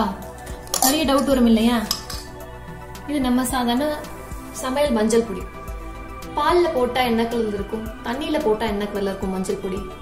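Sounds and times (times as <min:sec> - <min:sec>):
background music with singing: 0:00.0 - 0:10.0
metal lid clinking on glass jar: 0:00.6 - 0:02.4.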